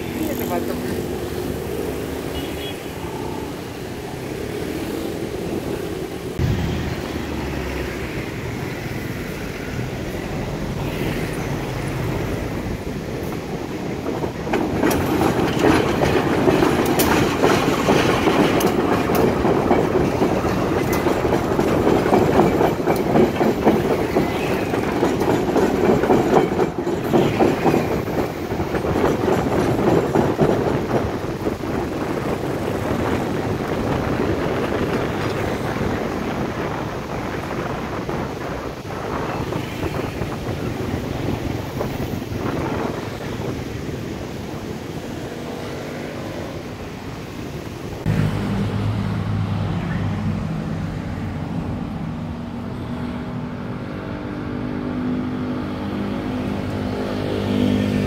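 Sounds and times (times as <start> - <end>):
diesel locomotive engine rumble: 0.0 - 58.0
train wheels clacking on track: 12.0 - 46.4.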